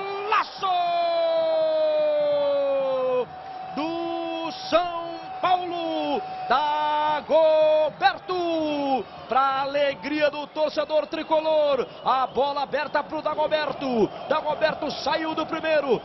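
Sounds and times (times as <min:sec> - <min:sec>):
commentator shouting goal cry: 0:00.0 - 0:16.0.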